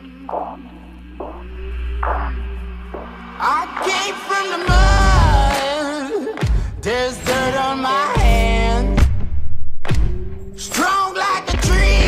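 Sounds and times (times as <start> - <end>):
low droning swell: 0.0 - 5.6.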